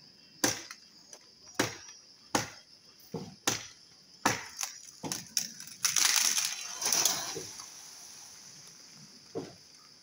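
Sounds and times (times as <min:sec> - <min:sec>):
blade chopping tree branch: 0:00.4 - 0:00.8, 0:01.6 - 0:06.6.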